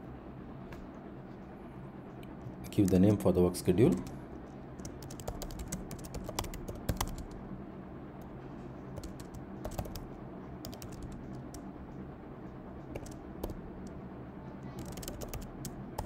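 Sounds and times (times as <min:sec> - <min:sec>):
faint low hum: 0:00.0 - 0:16.0
keyboard typing: 0:03.8 - 0:04.2, 0:04.8 - 0:07.4, 0:09.0 - 0:11.7, 0:12.8 - 0:14.0, 0:14.8 - 0:16.0.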